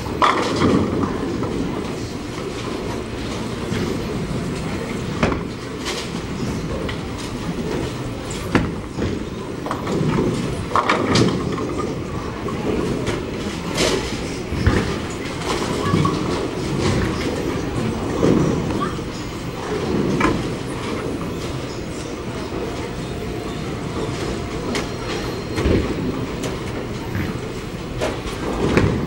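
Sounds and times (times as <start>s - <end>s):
bowling balls rolling: 0.0s - 29.0s
bowling pins crashing: 19.6s - 29.0s.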